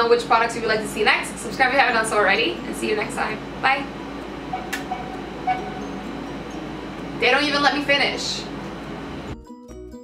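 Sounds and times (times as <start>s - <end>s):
air conditioner running: 0.0s - 9.4s
faint hum: 0.0s - 9.4s.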